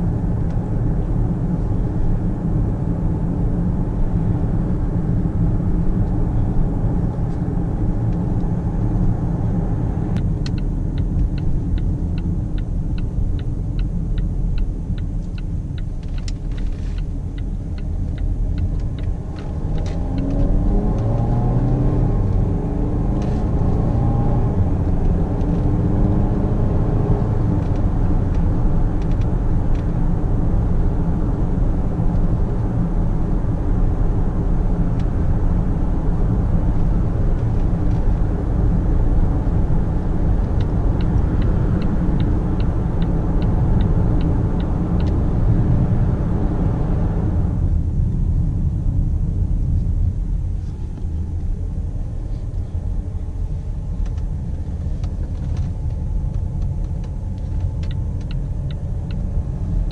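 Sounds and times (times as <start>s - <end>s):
diesel engine accelerating: 0.0s - 59.9s
turn indicator ticking: 10.2s - 22.5s, 37.4s - 45.8s, 53.3s - 59.9s.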